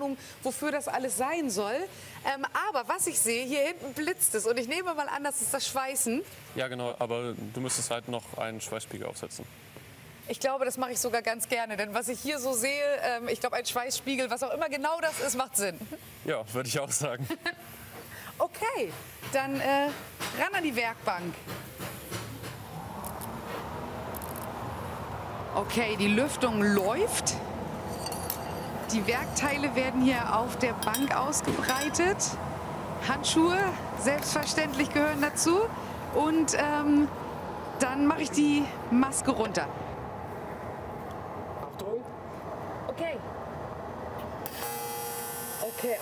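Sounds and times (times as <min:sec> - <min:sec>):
ventilation rushing: 0:22.3 - 0:44.4
welding arc hissing and buzzing: 0:24.1 - 0:25.0, 0:44.4 - 0:46.0.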